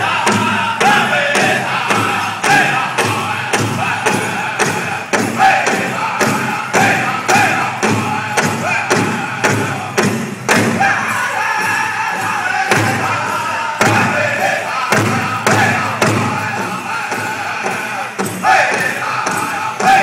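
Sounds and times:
high-pitched chanted singing: 0.0s - 20.0s
large hand drum beating: 0.0s - 20.0s.

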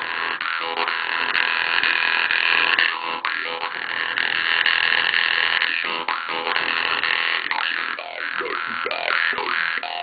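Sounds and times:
jew's harp drone: 0.0s - 10.0s.

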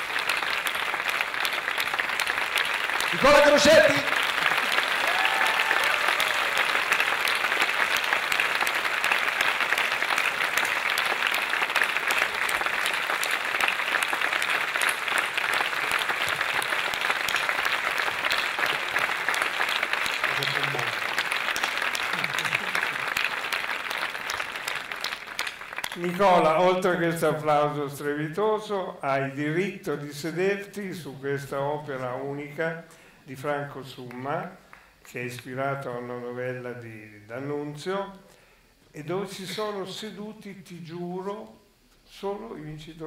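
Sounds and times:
large audience applauding: 0.0s - 27.2s.

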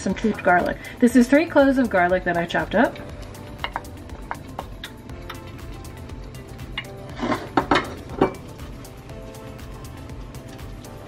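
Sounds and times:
soft background music: 0.0s - 11.0s
utensils tapping plate and pan: 3.6s - 5.4s, 6.7s - 8.5s.

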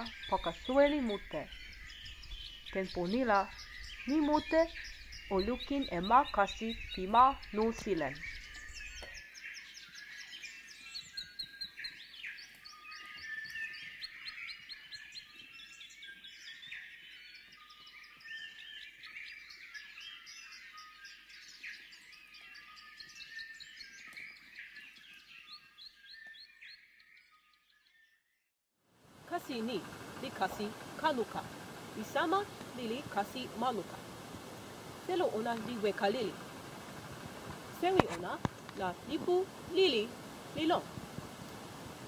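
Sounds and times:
forest birds chirping and trilling: 0.0s - 28.4s, 29.1s - 42.0s.

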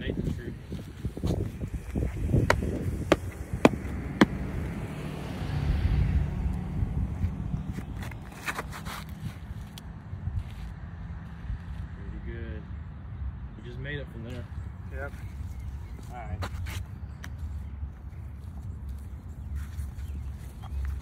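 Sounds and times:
running scuffs and steps: 0.0s - 4.6s, 15.1s - 21.0s
footsteps: 0.3s - 4.7s.

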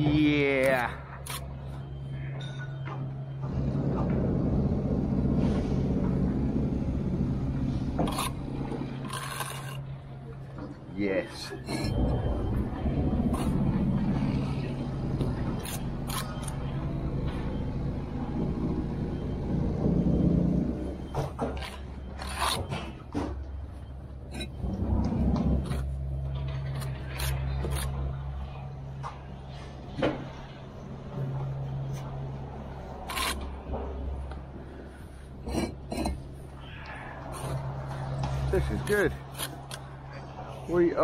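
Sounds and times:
low engine hum: 0.8s - 11.0s, 11.8s - 40.9s
trowel scraping mortar: 8.0s - 9.8s, 21.6s - 22.9s, 26.7s - 28.0s, 33.0s - 33.5s.

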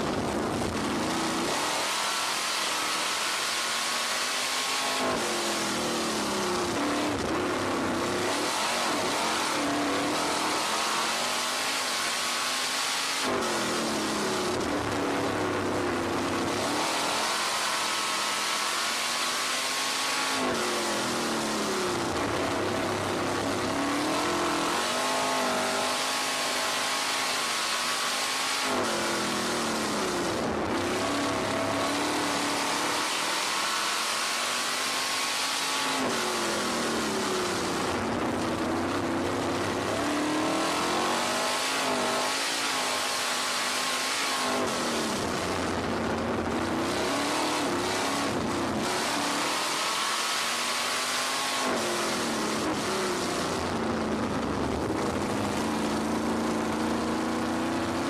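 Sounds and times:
race car engine at full throttle: 0.0s - 58.0s.

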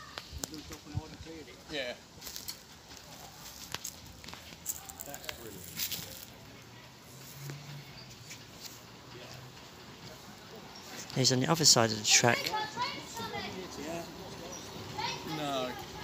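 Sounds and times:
faint distant voices: 0.0s - 16.0s
light clicks and crackles: 2.2s - 6.4s.

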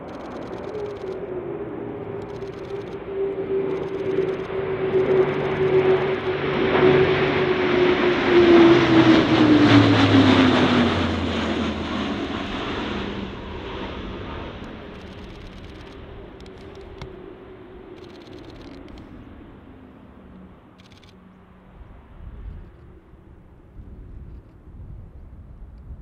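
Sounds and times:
turboprop aircraft flying past: 0.0s - 25.7s.

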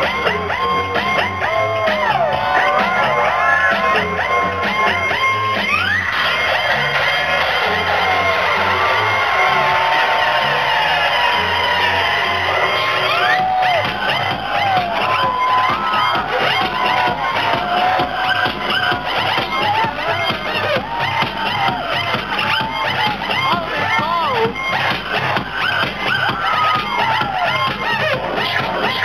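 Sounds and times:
electronic dance music: 0.0s - 29.0s.

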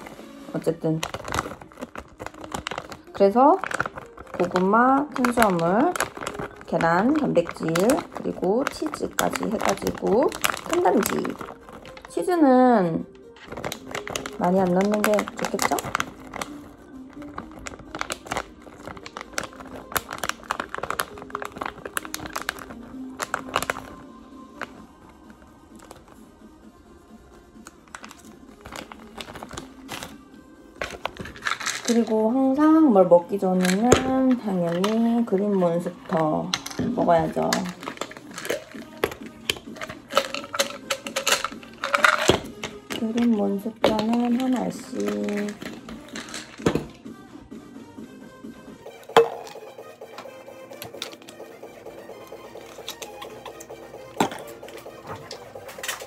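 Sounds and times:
plastic bag crinkling: 0.0s - 12.4s, 13.2s - 24.8s, 27.6s - 32.3s, 33.4s - 46.9s, 52.2s - 56.0s
quiet background music: 0.0s - 56.0s
capsules rattling: 0.9s - 12.4s, 13.3s - 24.0s, 27.9s - 30.2s, 30.8s - 32.2s, 33.4s - 47.0s, 48.9s - 56.0s
plastic cap clicks: 36.5s - 46.9s.

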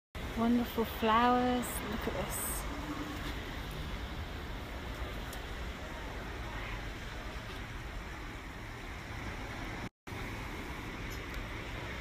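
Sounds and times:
outdoor background noise: 0.2s - 12.0s.

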